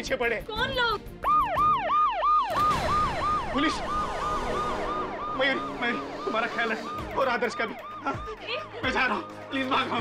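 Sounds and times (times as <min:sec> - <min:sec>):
police siren yelping: 0:01.2 - 0:10.0.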